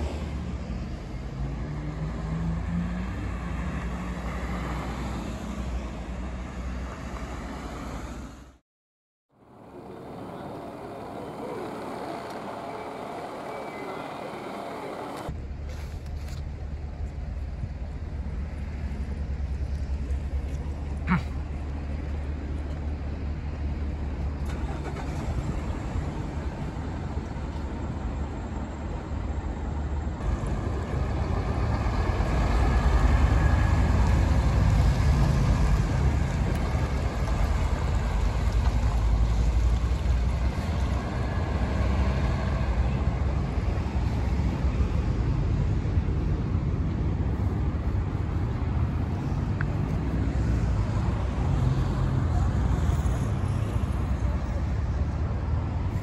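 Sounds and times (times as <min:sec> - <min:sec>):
bus diesel engine driving past: 0:00.0 - 0:08.6, 0:09.4 - 0:56.0.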